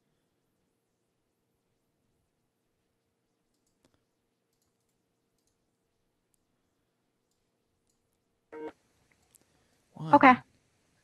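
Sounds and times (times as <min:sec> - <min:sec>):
faint clicks: 0:03.4 - 0:05.7, 0:07.2 - 0:08.2
short electronic call tone: 0:08.6 - 0:08.8.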